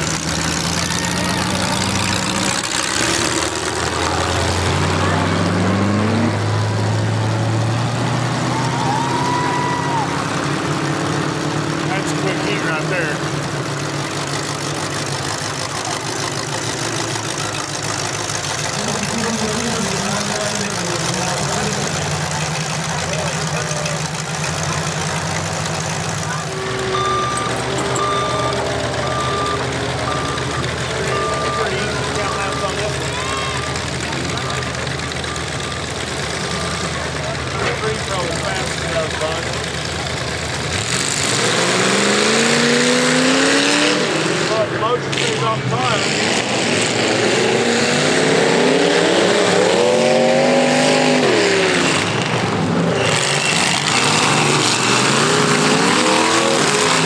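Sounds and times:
race car engines running: 0:00.0 - 0:57.0
reversing alarm beeping: 0:26.6 - 0:36.0.

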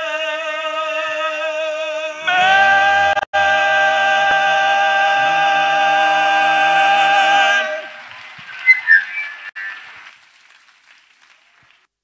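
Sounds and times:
audience applause: 0:05.2 - 0:11.9
loud whistles: 0:07.4 - 0:10.1.

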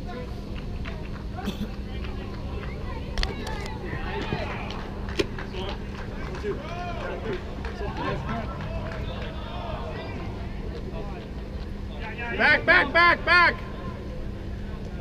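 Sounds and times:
distant players' voices echoing: 0:00.0 - 0:15.0
steady low hum: 0:00.0 - 0:15.0.

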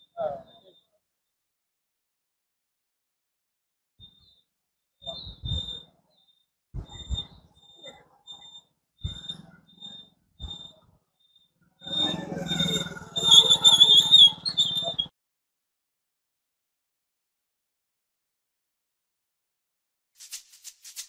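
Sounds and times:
high thin chirp: 0:20.2 - 0:21.0.

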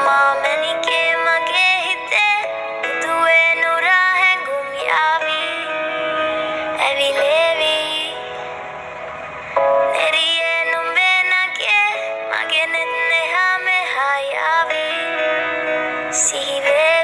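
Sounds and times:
high ornamented singing voice: 0:00.0 - 0:08.6, 0:09.6 - 0:15.4, 0:16.1 - 0:17.0
backing music: 0:01.6 - 0:13.6.

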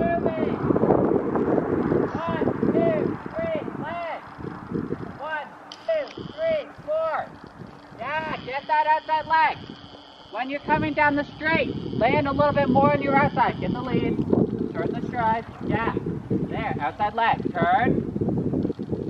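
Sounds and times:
low rumbling noise: 0:00.0 - 0:19.0
person calling out: 0:02.1 - 0:04.2, 0:05.2 - 0:07.3, 0:08.0 - 0:09.7.

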